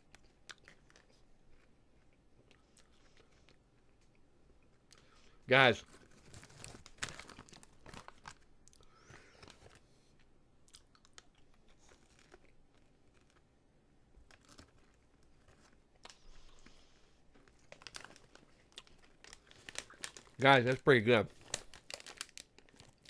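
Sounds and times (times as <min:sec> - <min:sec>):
popcorn being chewed: 0:00.0 - 0:23.0.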